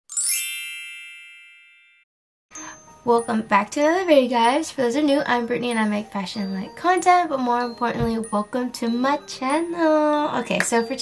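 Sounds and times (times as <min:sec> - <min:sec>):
shimmering chime sound effect: 0:00.1 - 0:03.0.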